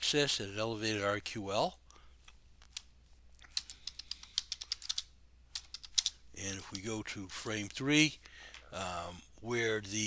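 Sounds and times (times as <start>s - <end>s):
computer keyboard typing: 3.5s - 6.2s.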